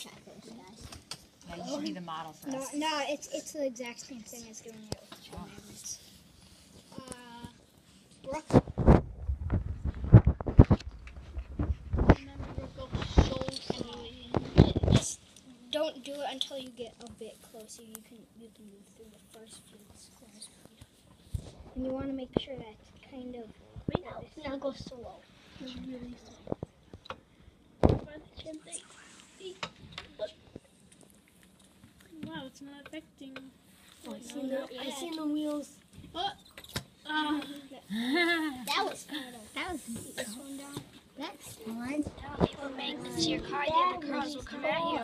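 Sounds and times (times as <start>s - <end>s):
quiet children's voices: 32.0s - 45.0s.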